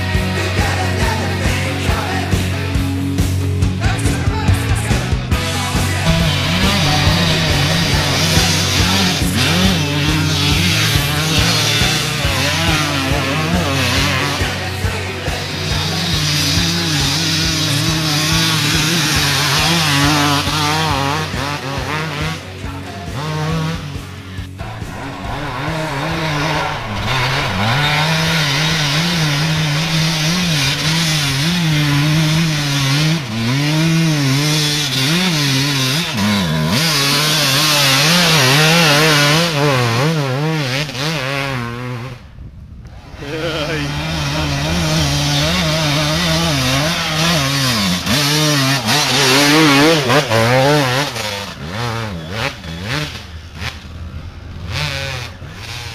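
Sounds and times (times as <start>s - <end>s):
dirt bike engine revving: 0.0s - 55.9s.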